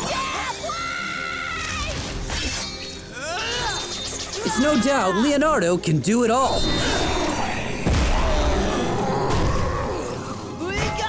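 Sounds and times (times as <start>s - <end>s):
action music: 0.0s - 11.0s.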